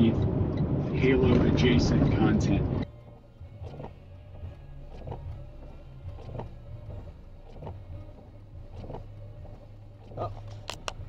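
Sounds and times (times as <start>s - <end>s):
car engine idling hum: 0.0s - 11.0s.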